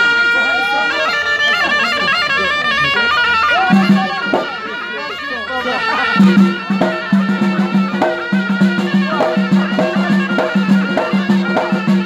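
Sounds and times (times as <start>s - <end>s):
reedy wind instrument melody: 0.0s - 12.0s
voices: 0.0s - 12.0s.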